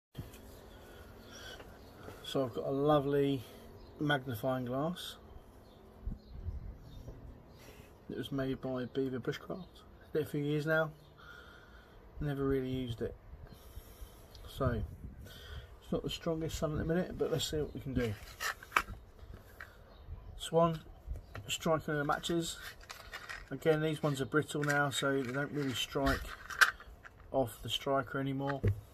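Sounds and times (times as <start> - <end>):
outdoor background hiss: 0.2 - 28.9
matchbox rustling: 18.0 - 19.8, 22.0 - 27.4.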